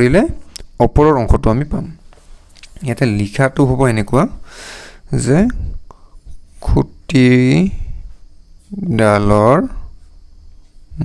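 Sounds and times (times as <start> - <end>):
man speaking: 0.0 - 2.0, 2.6 - 4.4, 5.1 - 5.8, 6.6 - 8.0, 8.7 - 9.9.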